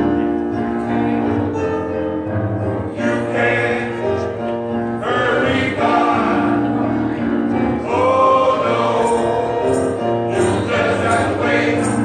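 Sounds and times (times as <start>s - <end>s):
male gospel choir singing: 2.6s - 12.0s.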